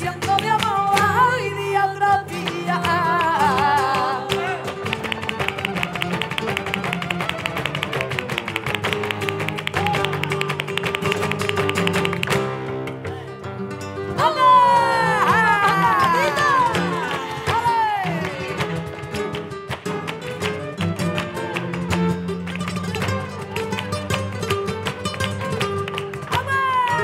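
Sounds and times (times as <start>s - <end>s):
guitar: 0.0s - 27.0s
person singing wavering vocal: 2.2s - 4.8s.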